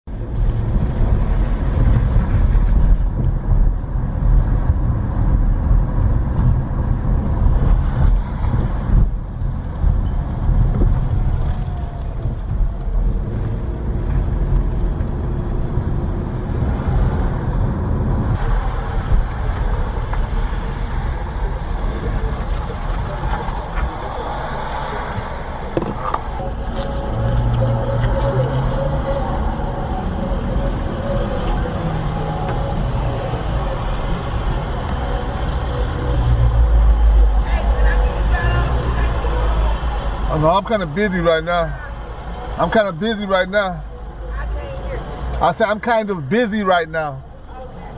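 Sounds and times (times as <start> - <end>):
car engine and road rumble: 0.0 - 47.9.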